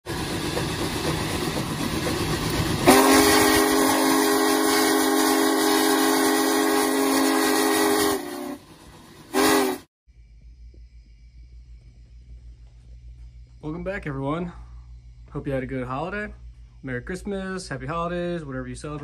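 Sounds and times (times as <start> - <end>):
steam train running: 0.0 - 9.9
steam whistle chord: 2.8 - 9.9.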